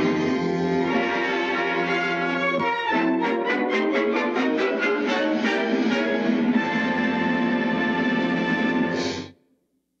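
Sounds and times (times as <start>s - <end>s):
orchestral music final chord: 0.0s - 9.0s.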